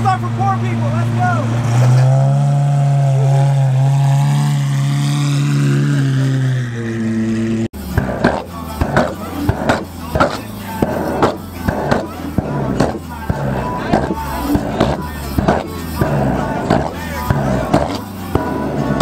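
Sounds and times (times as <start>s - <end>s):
car engine at low revs: 0.0s - 19.0s.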